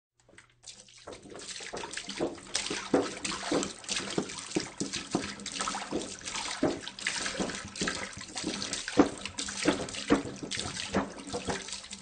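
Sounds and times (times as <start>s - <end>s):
water pouring from a jug: 0.2s - 12.0s.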